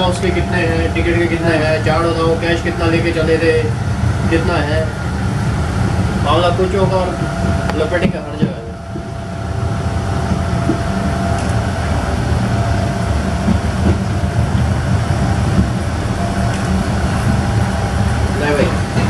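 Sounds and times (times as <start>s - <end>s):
thin steady hum: 0.0s - 19.0s
train coach rumbling: 0.0s - 19.0s.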